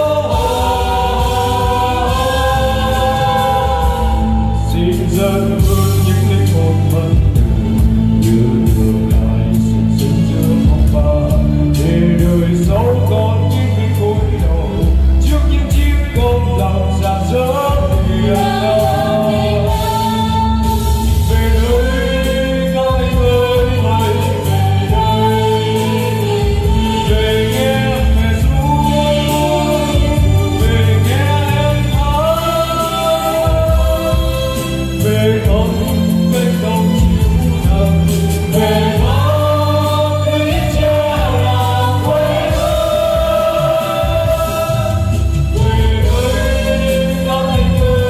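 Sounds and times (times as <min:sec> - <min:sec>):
instrumental accompaniment: 0:00.0 - 0:48.0
voices singing together: 0:00.0 - 0:48.0.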